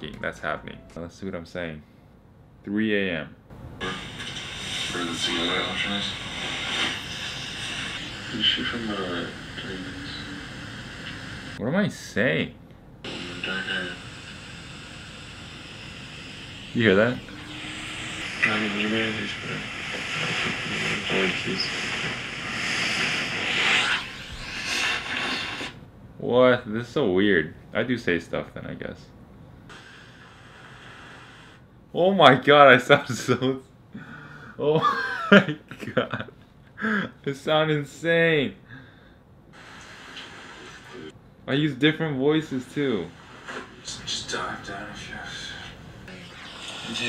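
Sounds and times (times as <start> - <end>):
steady hiss: 3.8 - 11.6, 13.0 - 25.8, 29.7 - 31.6, 39.5 - 41.2, 42.2 - 45.8, 46.4 - 47.0.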